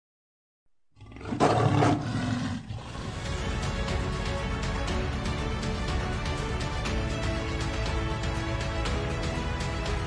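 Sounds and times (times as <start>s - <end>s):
lion roaring: 1.0s - 3.1s.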